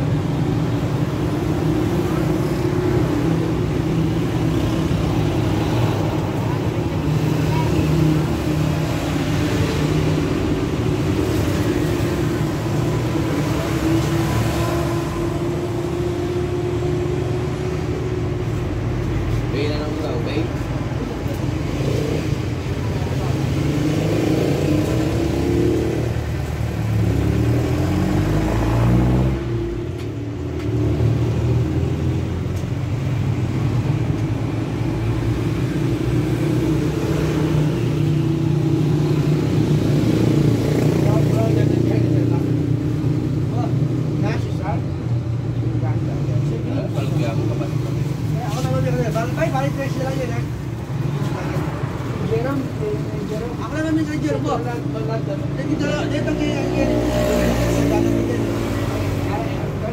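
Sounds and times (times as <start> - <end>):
voices: 40.3 - 59.9.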